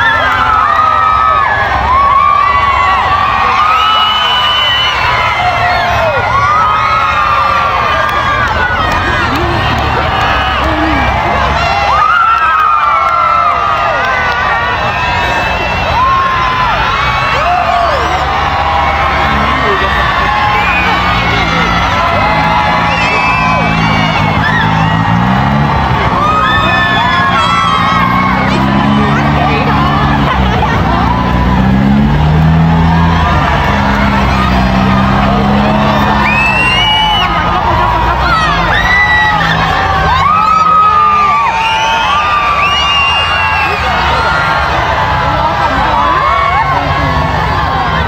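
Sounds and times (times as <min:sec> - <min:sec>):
crowd whooping and shouting: 0:00.0 - 0:48.0.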